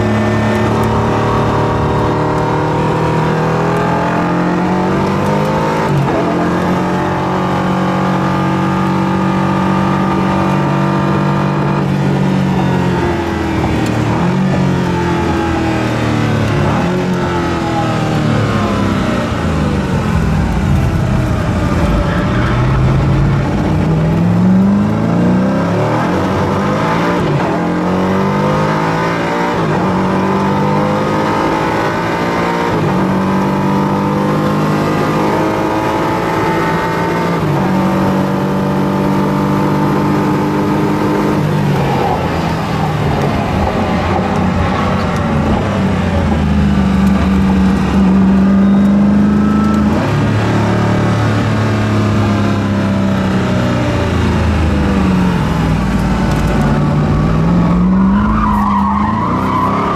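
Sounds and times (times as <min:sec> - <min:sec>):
car engine heard from cabin: 0:00.0 - 0:59.9.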